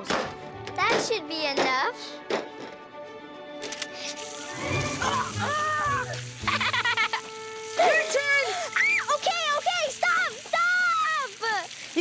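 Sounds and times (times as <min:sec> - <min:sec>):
background music: 0:00.0 - 0:12.0
water spraying from hose: 0:04.0 - 0:12.0
children laughing: 0:04.3 - 0:09.2.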